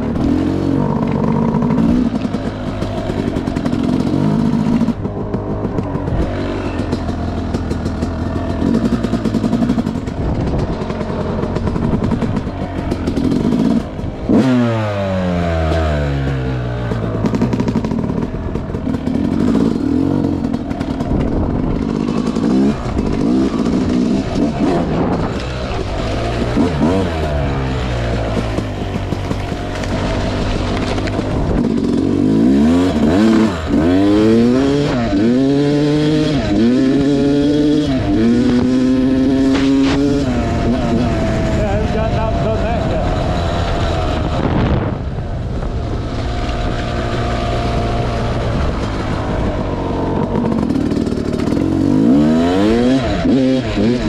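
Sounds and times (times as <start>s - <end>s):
dirt bike engine revving: 0.0s - 54.0s.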